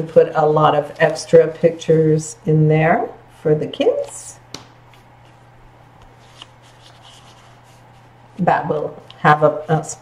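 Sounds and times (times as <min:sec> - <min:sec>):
paper rustling: 0:06.1 - 0:08.1.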